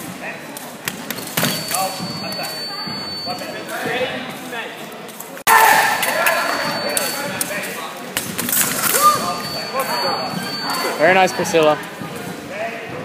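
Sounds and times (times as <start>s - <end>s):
people talking in large hall: 0.0s - 13.0s.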